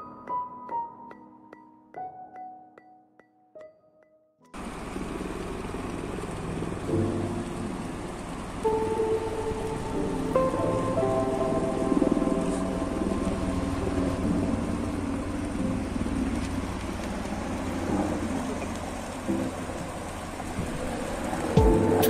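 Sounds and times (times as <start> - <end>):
stream running over rocks: 4.6 - 22.0.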